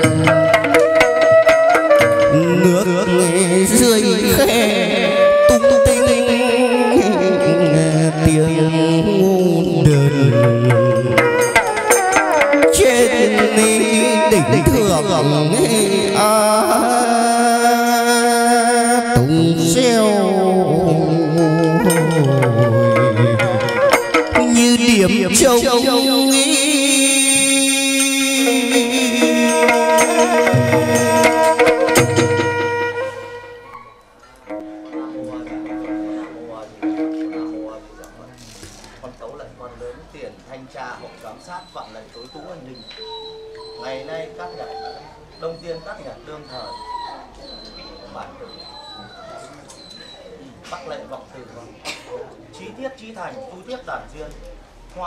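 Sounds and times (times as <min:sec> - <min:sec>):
ritual singing with wavering line: 0:00.0 - 0:33.7
crowd chatter: 0:02.0 - 0:55.0.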